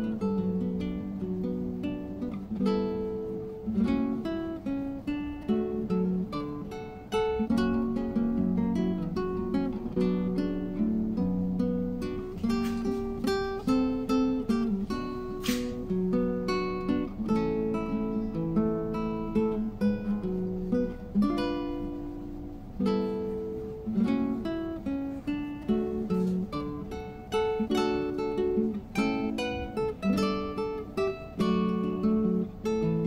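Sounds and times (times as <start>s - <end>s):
acoustic guitar playing: 0.0s - 33.0s.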